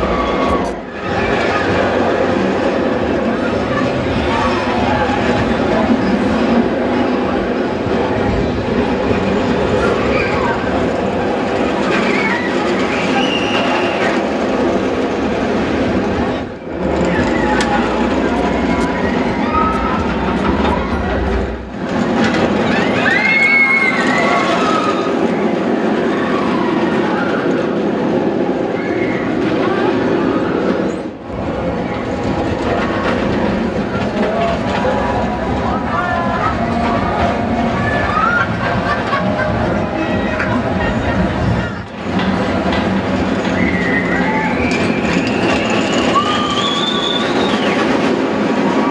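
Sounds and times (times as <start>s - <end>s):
crowd voices: 0.0s - 48.9s
roller coaster rumbling on track: 0.0s - 48.9s.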